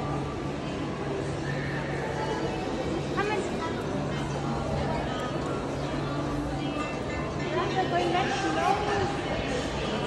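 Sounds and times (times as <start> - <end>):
scattered voices: 0.1 - 10.0.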